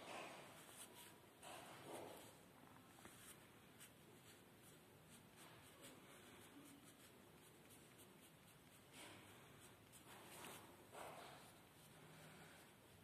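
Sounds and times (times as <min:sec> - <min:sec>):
drawing tool scratching on paper: 0:03.1 - 0:13.0.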